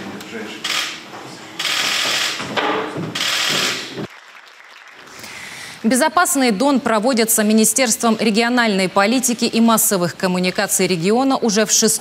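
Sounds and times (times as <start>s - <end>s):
audience applauding: 3.2s - 5.8s.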